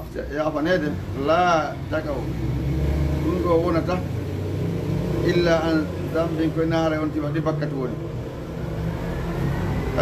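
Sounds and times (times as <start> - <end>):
man speaking: 0.0 - 2.4, 3.2 - 4.2, 5.2 - 8.2.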